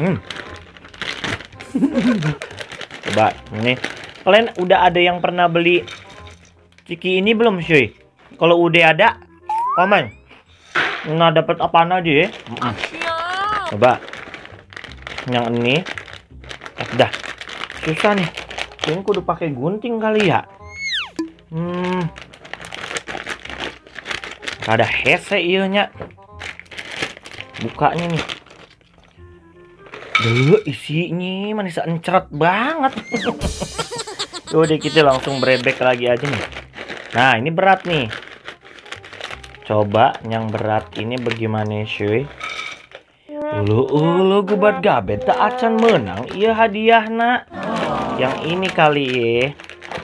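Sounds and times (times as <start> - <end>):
plastic snack packets crinkling: 0.0 - 9.0, 11.8 - 31.5, 33.0 - 50.0
person humming: 12.6 - 13.8, 33.0 - 35.6, 47.5 - 48.7.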